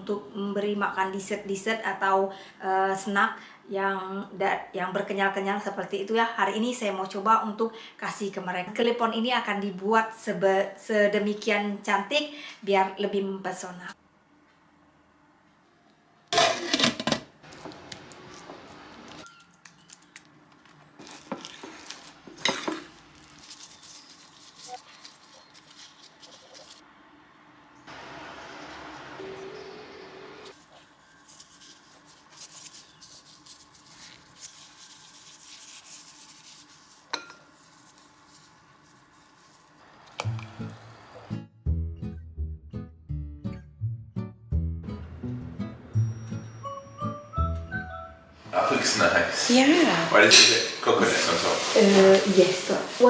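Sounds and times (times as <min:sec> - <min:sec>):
dishes clinking: 0:16.4 - 0:17.3, 0:37.1 - 0:37.5, 0:50.3 - 0:50.8
music with bass line: 0:41.4 - 0:48.0
steady hiss: 0:50.2 - 0:53.0.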